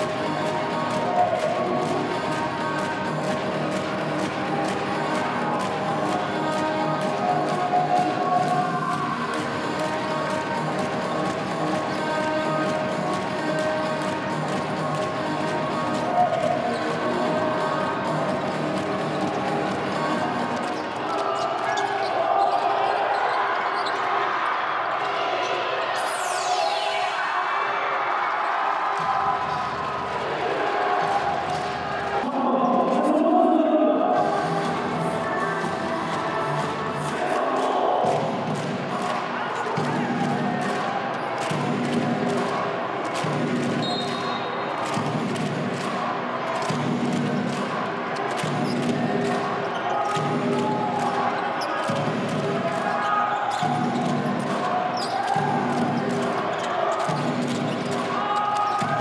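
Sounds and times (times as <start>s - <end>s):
music over loudspeakers: 0.0s - 21.9s, 25.8s - 59.0s
voices in hall: 0.0s - 59.0s
basketballs bouncing on court: 38.0s - 59.0s.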